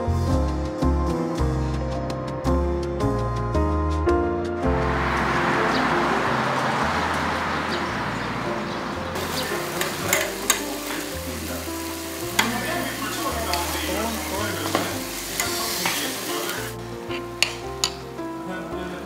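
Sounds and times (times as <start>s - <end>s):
soft background music: 0.0s - 19.0s
stew simmering and sizzling: 9.1s - 19.0s
chopsticks clicking against pots: 9.8s - 10.7s, 17.4s - 18.0s.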